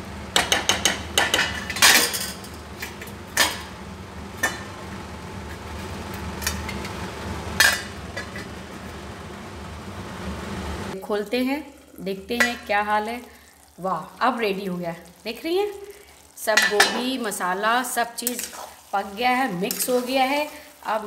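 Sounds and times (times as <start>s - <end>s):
steady low hum: 0.0s - 11.0s
metal utensils clinking on pan: 0.4s - 3.7s, 16.6s - 17.1s, 18.2s - 18.6s, 19.6s - 20.2s.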